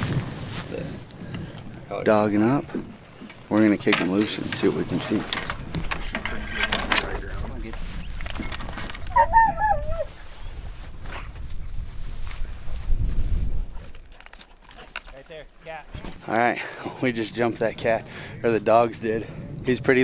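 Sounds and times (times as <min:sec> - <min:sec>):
wind rumble on microphone: 0:00.0 - 0:03.3, 0:04.4 - 0:14.2, 0:16.9 - 0:20.0
knocks and clatter in dog box: 0:05.3 - 0:07.2
hound bawling: 0:09.0 - 0:10.2.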